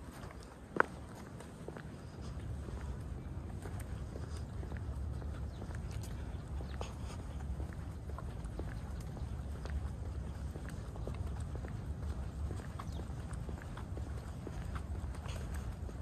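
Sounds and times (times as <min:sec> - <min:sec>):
footsteps on paved path: 0:00.0 - 0:16.0
wind buffeting microphone: 0:00.0 - 0:16.0.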